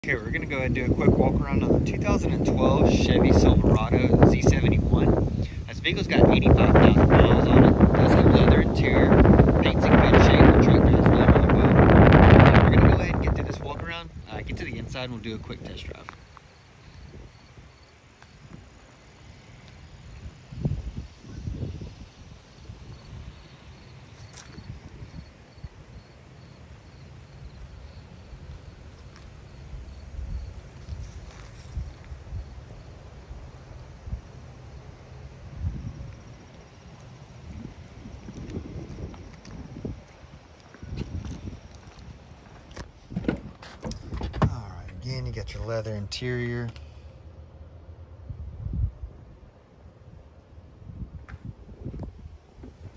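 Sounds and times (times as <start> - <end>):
wind rumble on microphone: 0.0 - 16.2, 16.9 - 18.7, 19.8 - 26.5, 27.4 - 46.6, 48.0 - 52.9
footsteps on pavement: 30.7 - 32.2, 38.0 - 45.0, 51.2 - 52.9.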